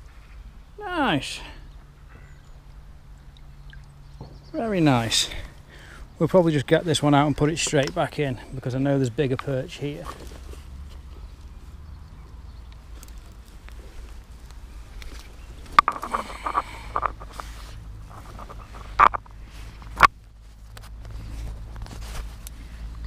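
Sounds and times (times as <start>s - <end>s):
low steady rumble: 1.4s - 23.0s
handling rustles: 9.1s - 11.5s, 12.8s - 23.0s
sharp clicks and knocks: 15.1s - 17.5s, 18.1s - 20.8s.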